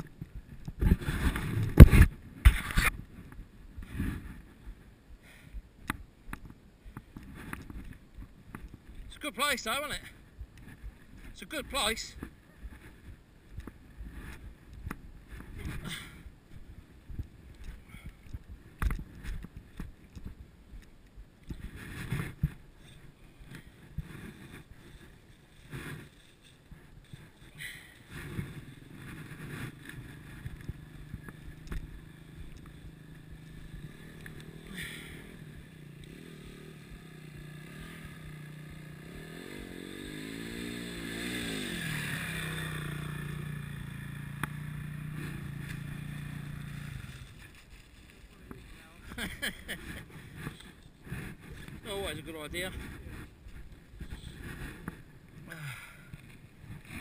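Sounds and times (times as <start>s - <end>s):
dirt bike engine running: 0.0s - 57.0s
bike jolting over rough ground: 45.1s - 54.9s.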